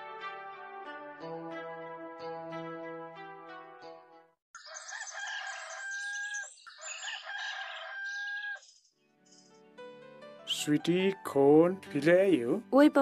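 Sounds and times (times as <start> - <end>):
rooster crowing: 4.6 - 8.6.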